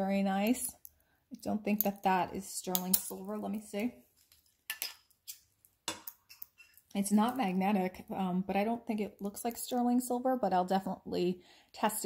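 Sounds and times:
jewelry clinking: 1.7s - 3.3s.

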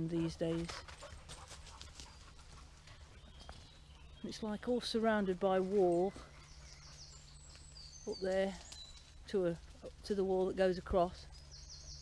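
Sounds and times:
footsteps in dry leaves: 0.3s - 11.8s.

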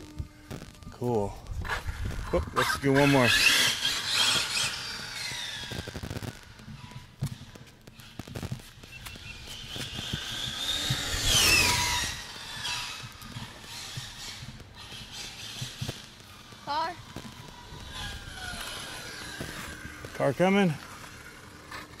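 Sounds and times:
electric motor whining: 0.0s - 22.0s.

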